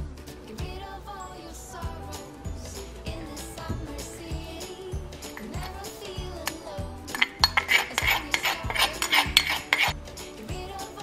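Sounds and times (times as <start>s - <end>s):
background music with beat: 0.0s - 11.0s
metal spoon scraping a bowl: 5.2s - 10.0s.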